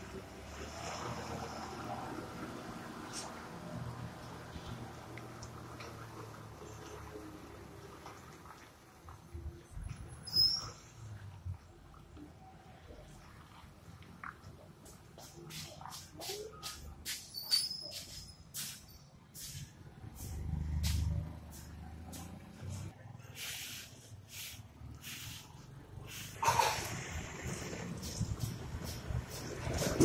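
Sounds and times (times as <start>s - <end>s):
heavy truck engines rumbling: 12.4s - 30.0s.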